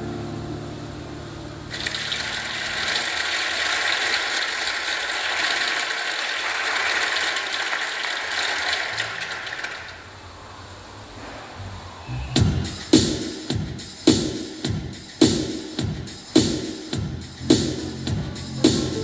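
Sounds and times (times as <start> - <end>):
audience applause: 1.7 - 10.0.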